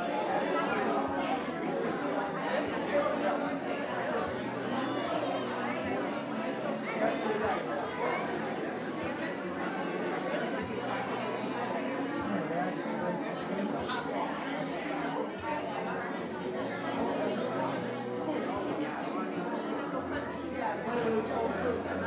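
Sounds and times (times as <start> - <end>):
indistinct overlapping chatter: 0.0 - 22.0.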